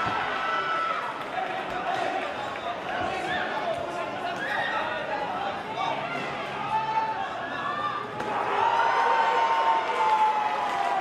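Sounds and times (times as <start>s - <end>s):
arena crowd noise: 0.0s - 11.0s
spectator long shout: 6.5s - 11.0s.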